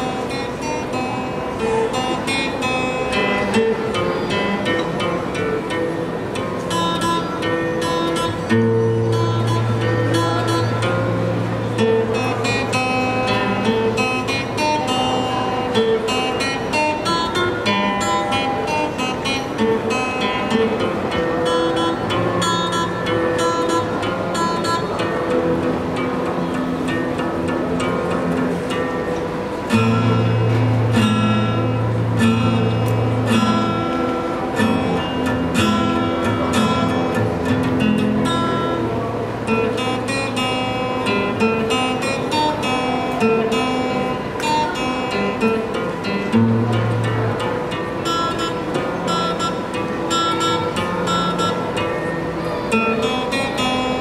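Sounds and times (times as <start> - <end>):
acoustic guitar playing: 0.0 - 54.0.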